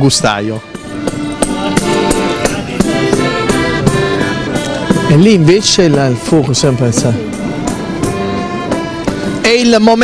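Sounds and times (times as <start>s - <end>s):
folk music held melody: 0.0s - 10.0s.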